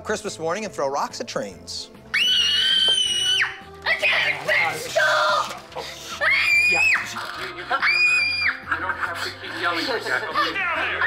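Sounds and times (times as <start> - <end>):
boy shrieking: 6.1 - 7.1.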